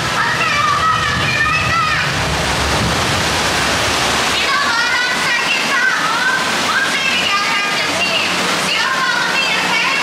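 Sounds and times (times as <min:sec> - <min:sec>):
rushing water: 0:00.0 - 0:10.0.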